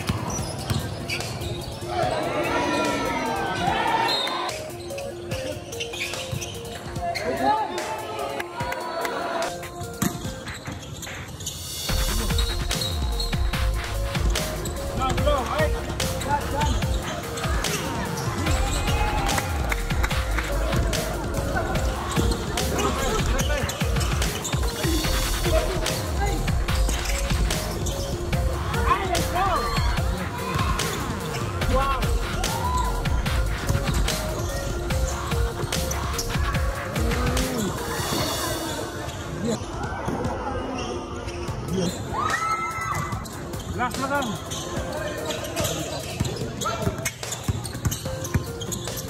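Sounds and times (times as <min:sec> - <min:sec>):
basketball bouncing on court: 0:00.0 - 0:01.4, 0:45.6 - 0:49.0
background music: 0:00.0 - 0:49.0
crowd voices: 0:00.0 - 0:49.0.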